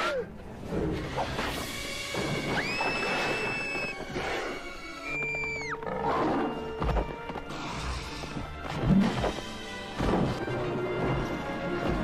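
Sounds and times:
dramatic orchestral music: 0:03.9 - 0:12.0.

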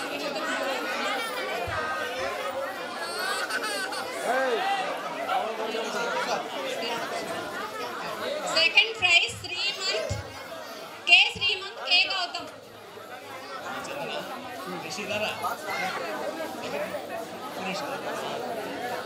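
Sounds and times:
crowd chattering in a hall: 0:00.0 - 0:19.0.

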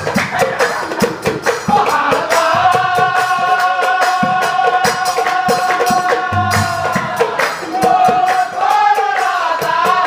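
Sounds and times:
percussion strikes: 0:00.0 - 0:10.0
voices singing devotional melody: 0:00.0 - 0:10.0.

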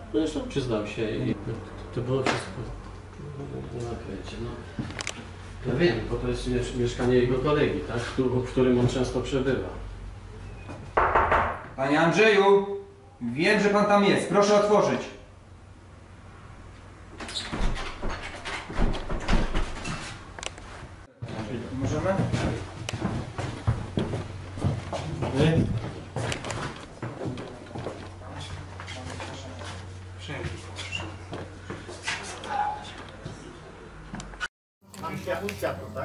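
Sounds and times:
rustling of people moving: 0:00.3 - 0:11.0, 0:16.7 - 0:36.0
door thuds: 0:11.0 - 0:11.7
shuffling footsteps: 0:19.6 - 0:36.0.

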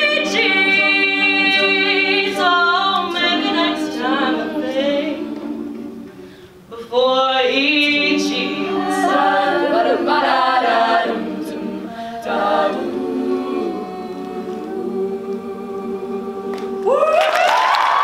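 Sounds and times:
women's a cappella group singing: 0:00.0 - 0:17.0.

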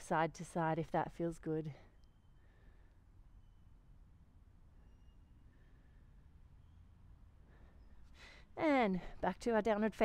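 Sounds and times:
faint high chirps: 0:01.9 - 0:08.1.

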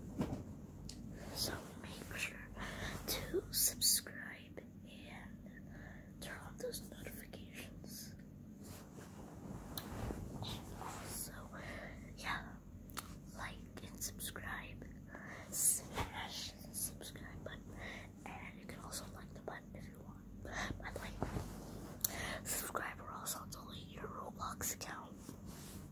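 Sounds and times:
boy whispering: 0:01.3 - 0:05.6, 0:06.2 - 0:08.2, 0:10.4 - 0:12.6, 0:13.3 - 0:21.3, 0:22.1 - 0:25.2.

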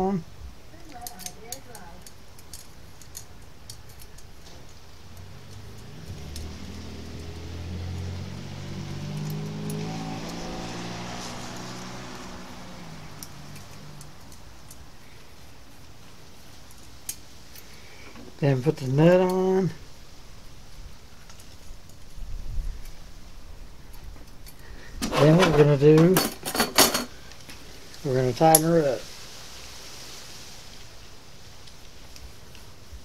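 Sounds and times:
metal bolt and washer clicks: 0:01.0 - 0:04.8
vehicle passing by: 0:04.2 - 0:16.4.

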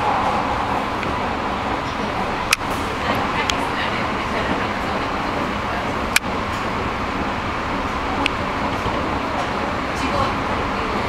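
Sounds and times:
moving train running noise: 0:00.0 - 0:11.0.

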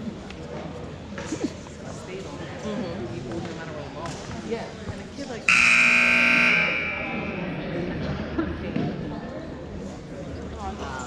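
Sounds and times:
murmur of voices: 0:00.0 - 0:11.0
scoreboard buzzer blast: 0:05.5 - 0:07.6.

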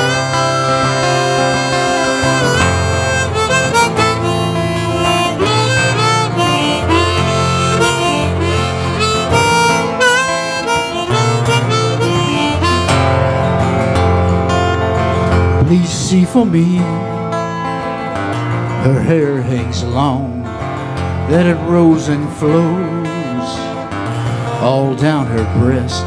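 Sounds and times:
harmonica melody: 0:00.0 - 0:15.7
strummed acoustic guitar: 0:00.0 - 0:26.0.

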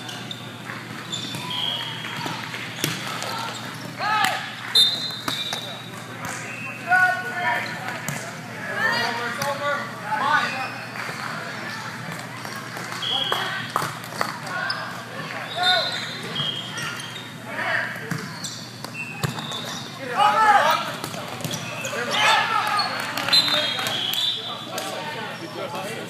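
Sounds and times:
sneakers squeaking on court floor: 0:00.0 - 0:06.8, 0:14.5 - 0:25.8
players shouting: 0:20.0 - 0:25.4.

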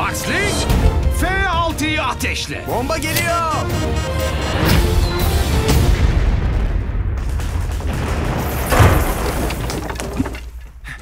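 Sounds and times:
booming explosion rumble: 0:05.8 - 0:09.7
sharp crash: 0:06.0 - 0:10.3.

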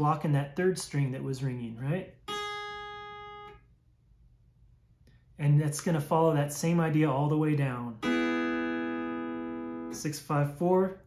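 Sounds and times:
pedal steel guitar note: 0:02.2 - 0:03.6, 0:08.0 - 0:10.0.

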